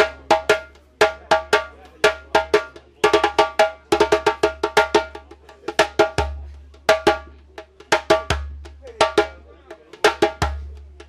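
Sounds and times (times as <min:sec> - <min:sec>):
djembe played with hands: 0:00.0 - 0:11.0.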